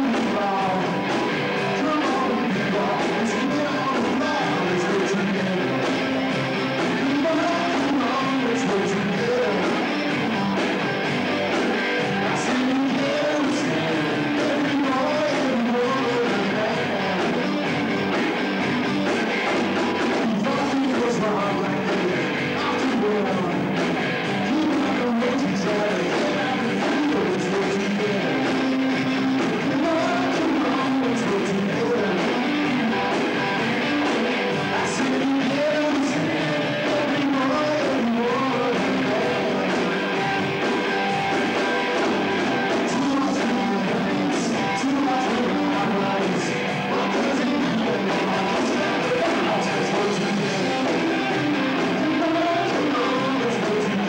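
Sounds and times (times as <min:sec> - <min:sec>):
man singing: 0:00.0 - 0:11.0, 0:11.7 - 0:18.2, 0:19.2 - 0:54.0
rock band playing: 0:00.0 - 0:54.0.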